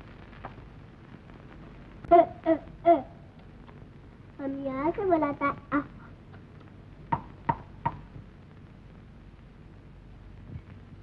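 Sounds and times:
child making wordless sounds: 4.4s - 6.2s.

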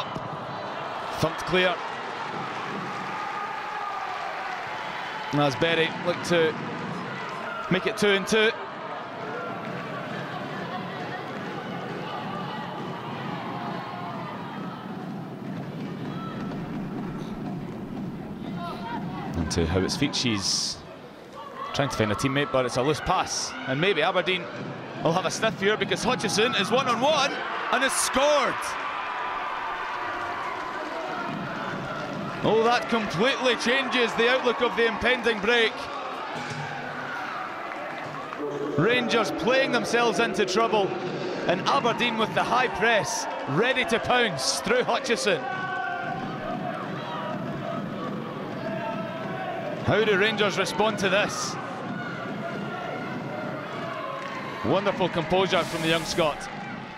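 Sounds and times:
even rushing crowd ambience: 0.0s - 56.9s.

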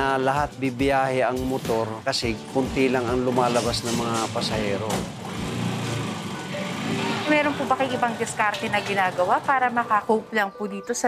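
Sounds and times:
faint music: 0.0s - 5.1s, 5.8s - 11.0s
motorcycle engine rumble: 3.0s - 9.9s.

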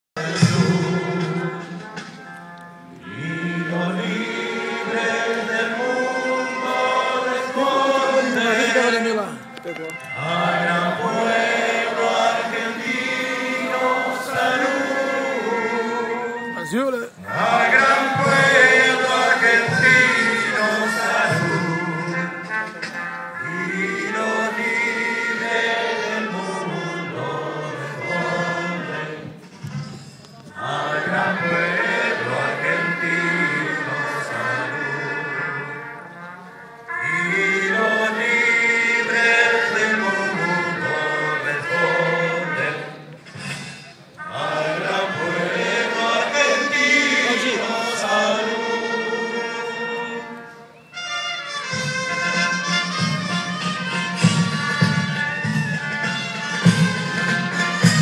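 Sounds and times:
choir singing an anthem with music: 0.2s - 9.4s, 10.1s - 50.8s.

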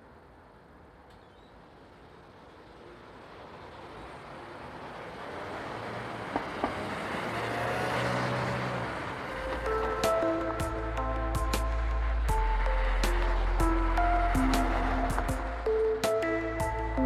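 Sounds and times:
music: 9.3s - 17.0s.

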